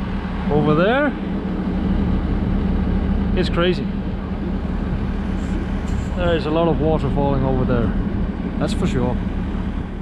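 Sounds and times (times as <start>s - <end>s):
excavator diesel engine idling: 0.0s - 10.0s.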